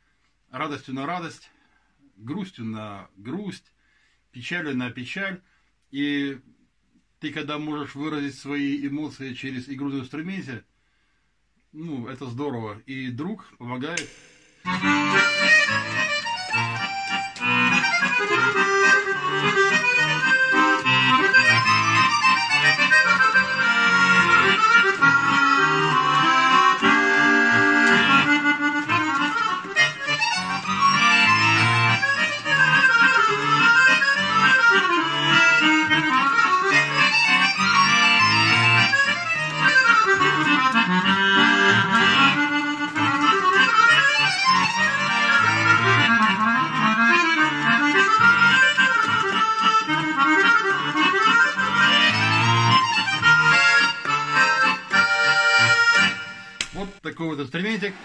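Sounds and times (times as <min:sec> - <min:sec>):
button accordion playing: 0:14.0 - 0:56.8.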